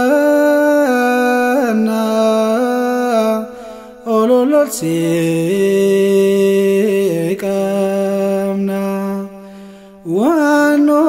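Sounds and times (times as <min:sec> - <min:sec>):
man singing a hymn: 0:00.0 - 0:09.4, 0:10.0 - 0:11.0.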